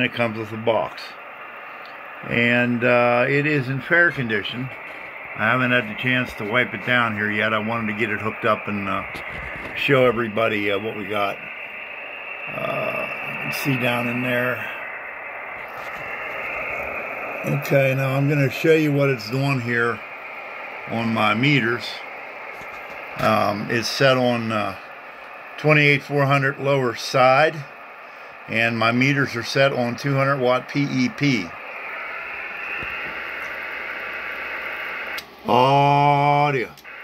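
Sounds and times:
radio static hiss: 0:00.0 - 0:37.0.

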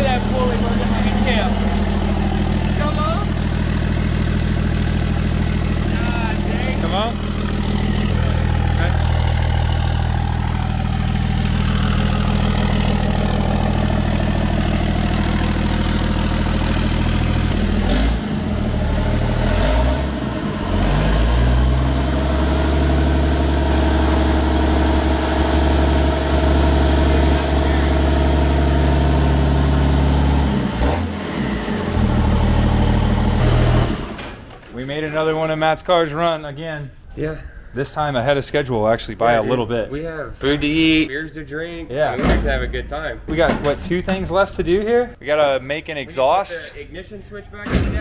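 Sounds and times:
diesel engine idling: 0:00.0 - 0:34.2.

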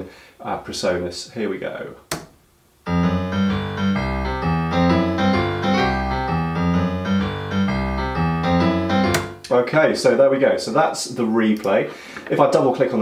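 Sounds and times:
sharp click: 0:02.1 - 0:02.4
grand piano playing: 0:02.9 - 0:09.5.

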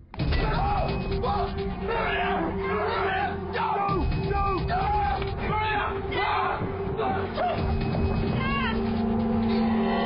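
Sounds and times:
film score low drone: 0:01.0 - 0:10.0.

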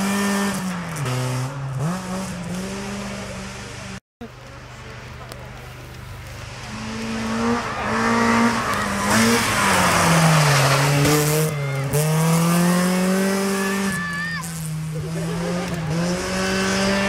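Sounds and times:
rally car engine revving: 0:00.0 - 0:04.0, 0:05.3 - 0:17.0
tyres on gravel: 0:03.5 - 0:17.0.

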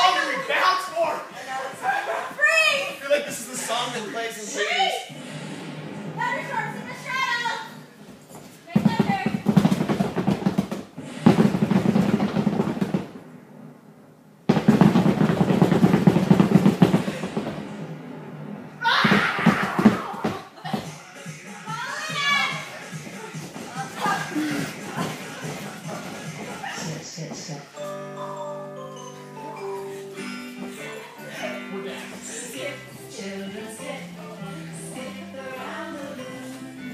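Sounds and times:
rapid drum roll: 0:08.8 - 0:13.3, 0:14.5 - 0:18.1, 0:18.8 - 0:20.4.

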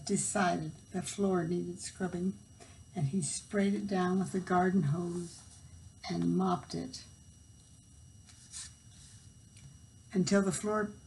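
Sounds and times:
faint steady hum: 0:00.0 - 0:11.0
thin high whine: 0:00.0 - 0:11.0.

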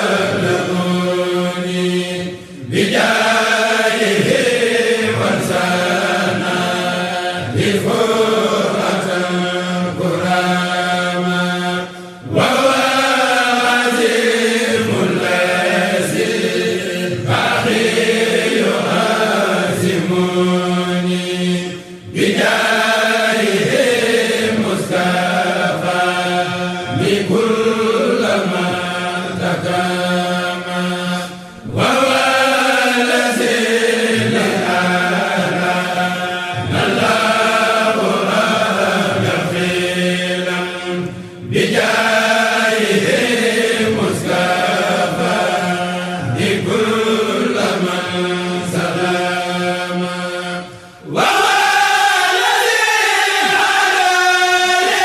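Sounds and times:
low held vocal drone: 0:00.0 - 0:55.0
men chanting unaccompanied: 0:00.0 - 0:55.0.

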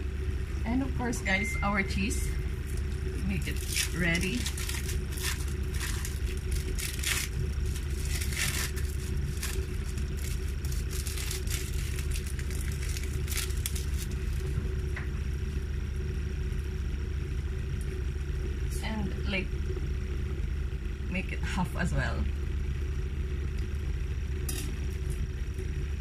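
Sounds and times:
steady low hum: 0:00.0 - 0:26.0
plastic wrapper crinkling: 0:02.5 - 0:14.6.

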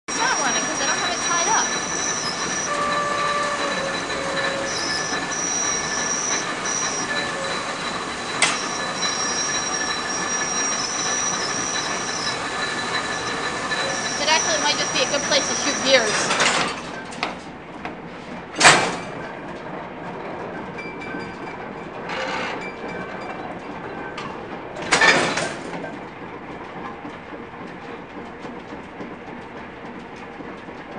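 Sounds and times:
high squeals: 0:00.1 - 0:16.4
spinning machines clattering: 0:00.1 - 0:17.1.

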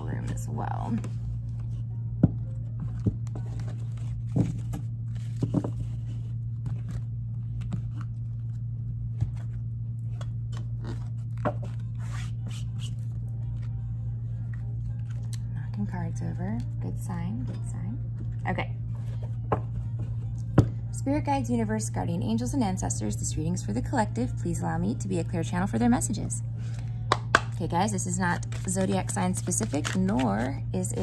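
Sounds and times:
low hum: 0:00.0 - 0:31.0
cards being shuffled: 0:02.7 - 0:13.8, 0:28.4 - 0:30.6.

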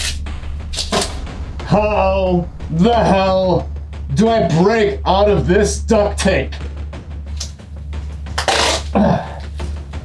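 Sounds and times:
man grunting: 0:08.9 - 0:09.5.

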